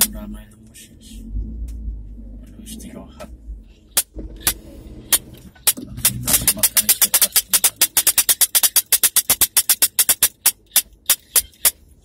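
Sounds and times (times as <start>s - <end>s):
car cabin low rumble: 0.0s - 7.1s
sharp clicks: 3.9s - 11.8s.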